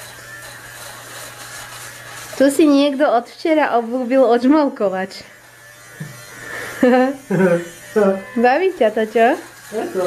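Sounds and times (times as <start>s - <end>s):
electric fabric shaver buzzing: 0.0s - 10.0s.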